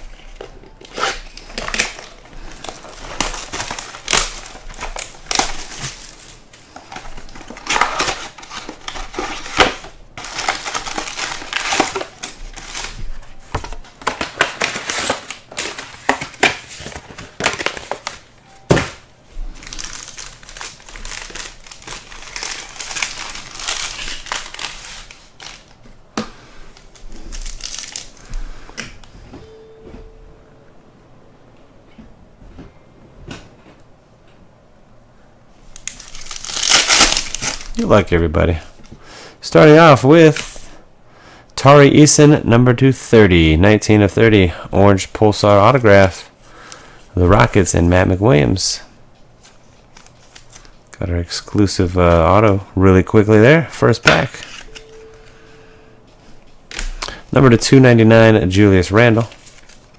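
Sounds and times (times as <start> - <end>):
plastic and foil packaging crinkling: 0.0 - 25.8, 26.7 - 28.5, 35.7 - 38.1, 56.2 - 59.9.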